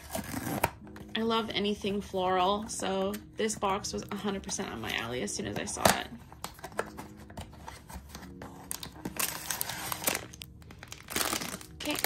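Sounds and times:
cardboard box rustling: 0:06.3 - 0:10.3
plastic bag crinkling: 0:08.7 - 0:12.0.

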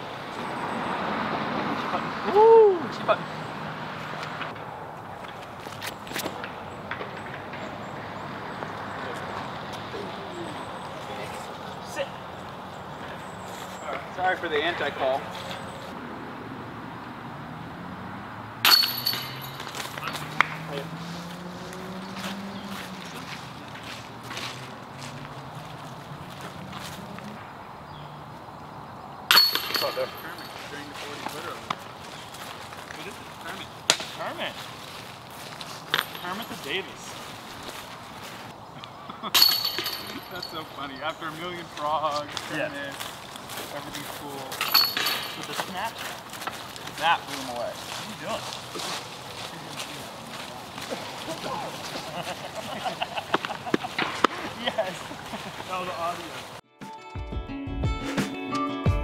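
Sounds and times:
quiet voices talking: 0:08.6 - 0:15.8, 0:29.7 - 0:37.6, 0:40.0 - 0:56.5
metal chains crashing and jangling: 0:18.6 - 0:20.4, 0:29.3 - 0:30.9, 0:35.9 - 0:36.8, 0:39.4 - 0:41.2, 0:44.5 - 0:45.8.

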